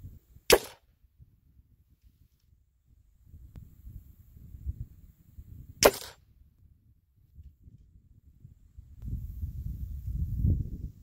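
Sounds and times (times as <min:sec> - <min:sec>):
air rifle shot: 0:00.5 - 0:00.9, 0:05.8 - 0:06.2.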